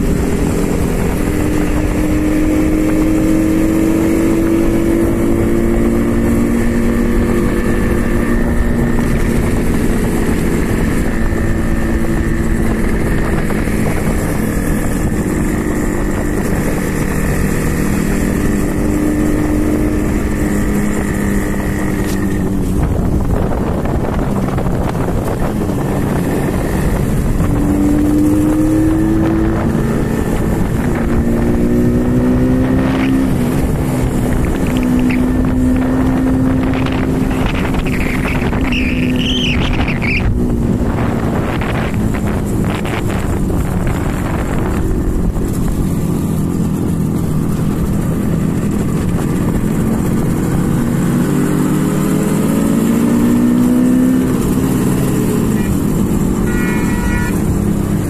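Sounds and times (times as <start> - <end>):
motorcycle engine revving: 0.0 - 58.0
wind rush: 0.0 - 58.0
warbling high tone: 37.3 - 40.3, 56.4 - 57.7.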